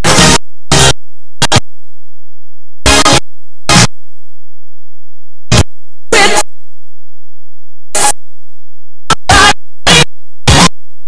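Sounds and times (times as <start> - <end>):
glitching distorted music: 0.0 - 1.6, 2.8 - 3.9, 5.5 - 6.5, 8.0 - 8.2, 9.1 - 10.8.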